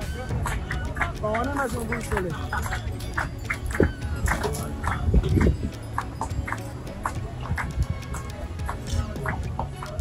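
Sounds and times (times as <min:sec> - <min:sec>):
van engine and road rumble: 0:00.0 - 0:10.0.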